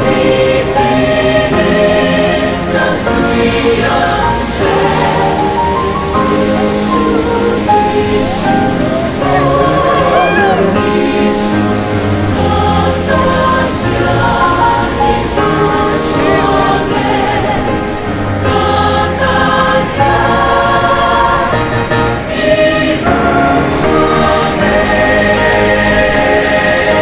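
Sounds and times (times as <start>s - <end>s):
choir singing sustained notes: 0.0s - 27.0s.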